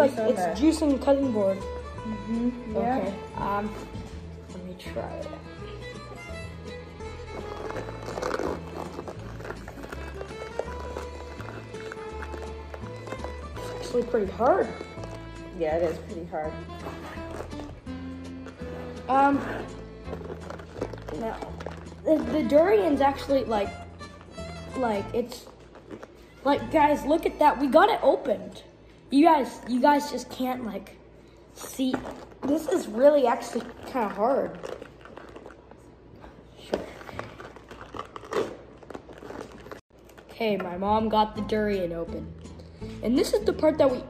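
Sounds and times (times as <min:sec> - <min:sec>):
oven mitts crackling on spiky husk: 0:07.4 - 0:23.7, 0:31.7 - 0:35.7.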